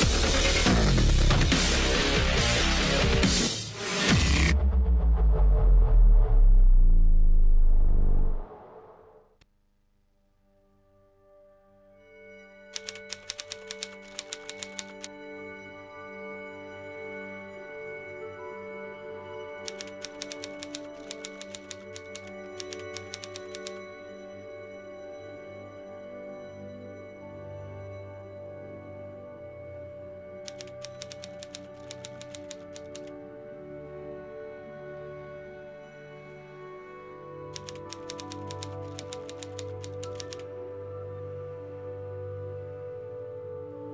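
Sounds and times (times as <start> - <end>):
ambient background music: 0.0 - 9.4, 10.4 - 43.9
typewriter keys clicking: 12.8 - 15.1, 19.7 - 23.8, 30.5 - 33.1, 37.6 - 40.5.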